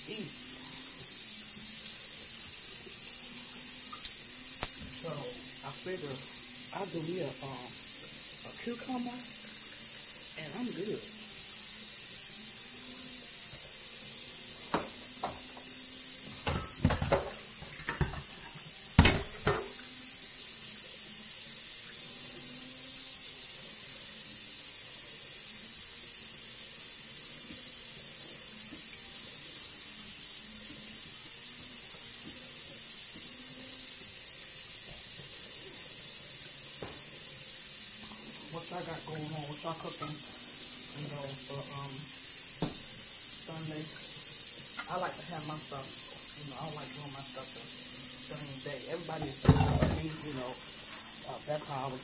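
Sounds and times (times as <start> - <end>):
steady hiss: 0.0 - 52.0.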